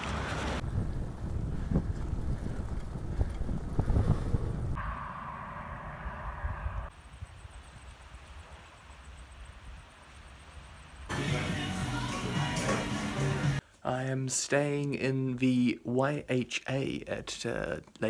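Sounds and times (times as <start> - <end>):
wind gusting on microphone: 0.0 - 8.2
open-air ambience: 0.0 - 18.0
faint high pulsing tone: 4.8 - 11.1.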